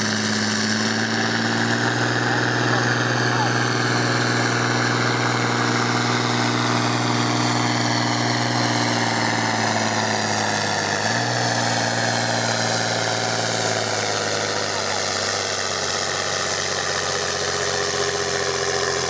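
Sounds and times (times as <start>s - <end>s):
tractor diesel engine under load: 0.0s - 19.0s.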